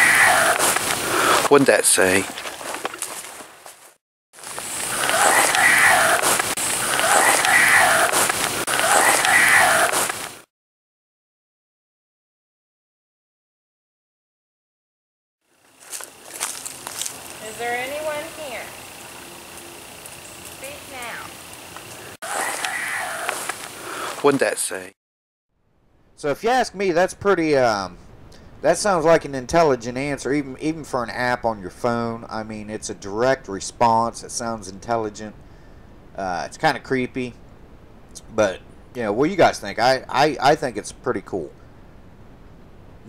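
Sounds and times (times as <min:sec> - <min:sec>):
radio static hiss: 0:00.0 - 0:02.3, 0:04.4 - 0:10.5, 0:15.9 - 0:25.0
warbling voice-like glide: 0:05.0 - 0:10.1.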